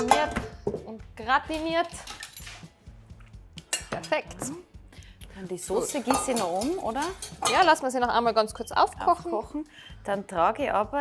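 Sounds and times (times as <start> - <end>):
crockery and utensils clinking: 0.0 - 0.8, 1.9 - 2.7, 3.6 - 4.6, 5.7 - 9.1.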